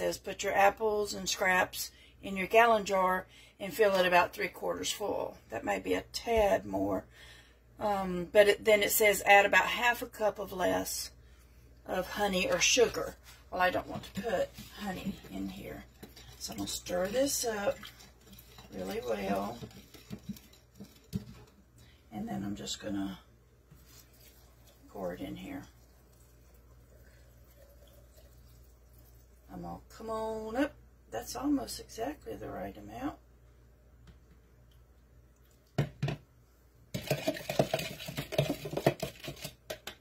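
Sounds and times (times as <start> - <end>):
metal spoon stirring in plastic cup: 12.3 - 21.6, 36.9 - 40.0
plastic and glass clattering: 18.0 - 21.6, 36.9 - 40.0.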